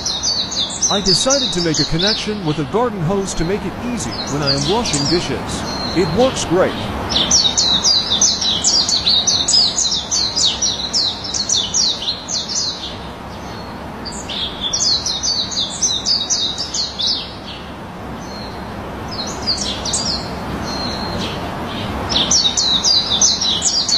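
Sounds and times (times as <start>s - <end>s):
songbird chirping: 0.0s - 23.9s
steady low hiss: 0.0s - 23.9s.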